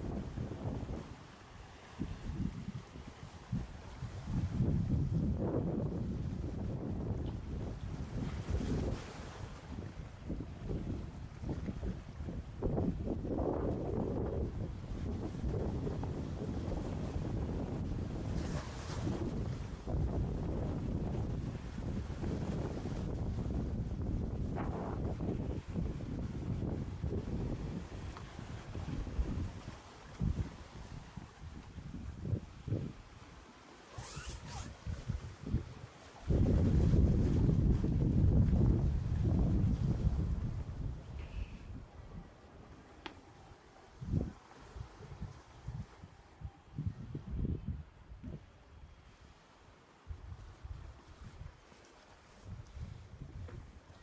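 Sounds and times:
wind buffeting microphone: 0.0 - 1.3, 1.9 - 33.1, 33.9 - 49.0, 52.4 - 54.0.

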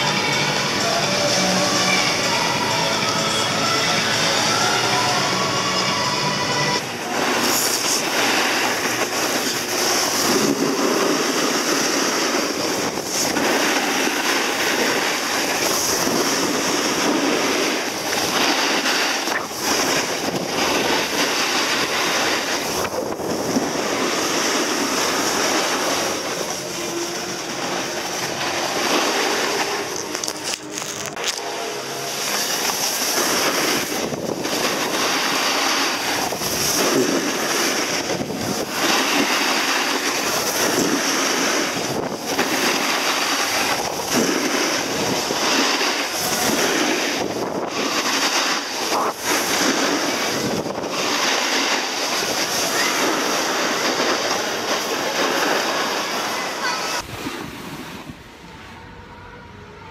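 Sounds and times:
wind on microphone: 6.7 - 59.6
skis scraping over snow: 6.8 - 58.1.

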